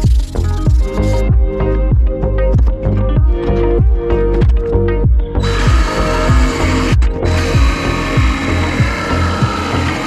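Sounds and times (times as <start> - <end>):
electronic music with kick drum: 0.0 - 10.0
jigsaw cutting wood: 5.4 - 10.0.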